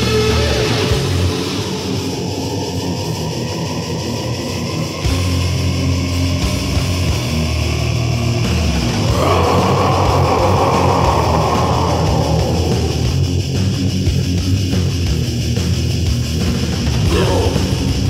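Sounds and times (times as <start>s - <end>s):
death metal music: 0.0s - 18.0s.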